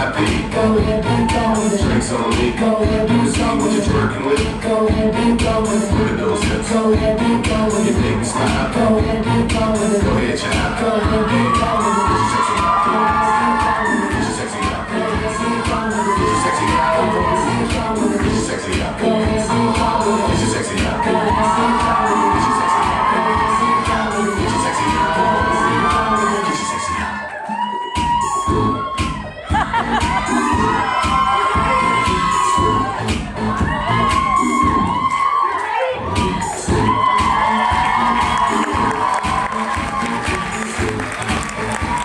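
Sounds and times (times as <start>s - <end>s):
audience cheering and shouting: 0.0s - 4.6s, 5.4s - 42.0s
loud dance music: 0.0s - 42.0s.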